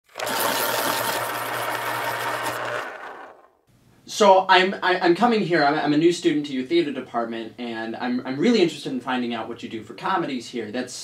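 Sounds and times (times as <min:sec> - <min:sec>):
low motor hum: 0:00.1 - 0:03.5
machine rattling: 0:00.1 - 0:03.5.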